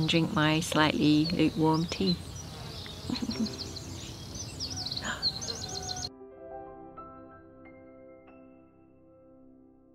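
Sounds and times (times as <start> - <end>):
small birds chirping: 0.0 - 6.1.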